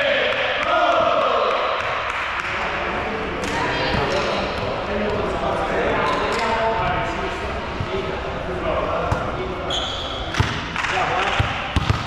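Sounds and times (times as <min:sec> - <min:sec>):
players' voices echoing: 0:00.0 - 0:12.0
volleyball bouncing on court floor: 0:10.3 - 0:12.0.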